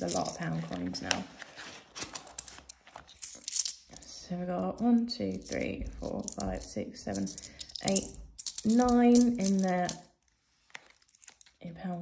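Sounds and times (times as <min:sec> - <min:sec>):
coins clicking together: 0:03.2 - 0:04.1, 0:05.3 - 0:10.0.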